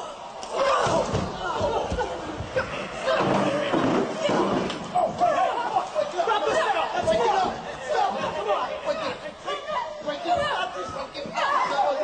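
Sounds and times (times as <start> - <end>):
women shouting and yelling: 4.1 - 12.0.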